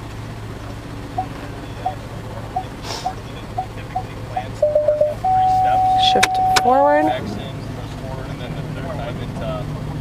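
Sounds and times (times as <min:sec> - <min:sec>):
parking sensor beeps: 0:01.1 - 0:07.1.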